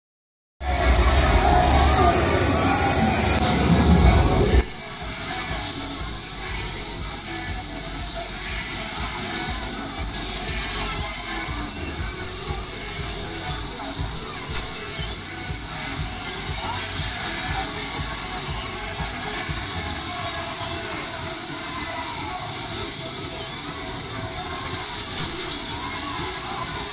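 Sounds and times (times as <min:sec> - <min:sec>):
loud low rumble: 0:00.6 - 0:05.3
fairground ride metallic squeal: 0:00.6 - 0:26.9.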